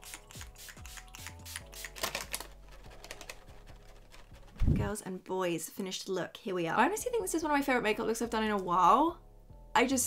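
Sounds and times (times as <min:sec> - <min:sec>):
spray bottle spritzing: 0:00.0 - 0:02.4
quiet background music: 0:00.0 - 0:10.0.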